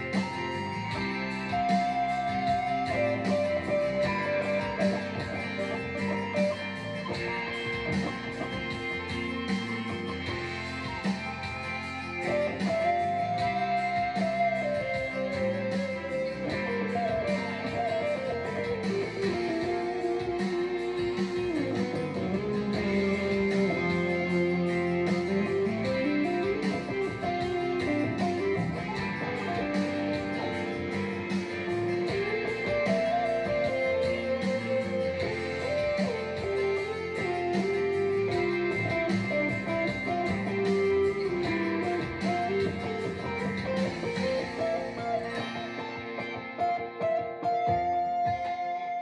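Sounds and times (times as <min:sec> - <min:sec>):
electric guitar lead: 0:00.0 - 0:49.0
slow ballad backing track: 0:00.0 - 0:49.0.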